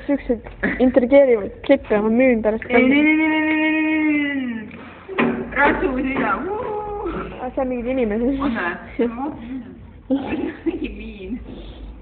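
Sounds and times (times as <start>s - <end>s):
voices talking and exclaiming: 0.2s - 11.4s.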